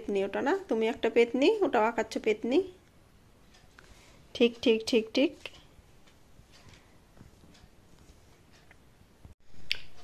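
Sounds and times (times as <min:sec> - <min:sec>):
faint light scratches and ticks: 0:05.3 - 0:08.8.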